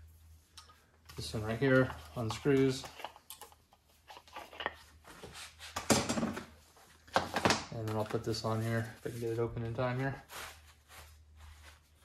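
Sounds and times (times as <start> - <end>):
low steady hum: 0.0 - 5.8.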